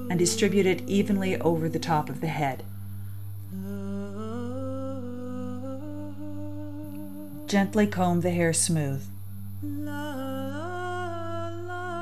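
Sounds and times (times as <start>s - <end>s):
low background hum: 0.0s - 12.0s
woman humming a slow tune: 0.0s - 12.0s.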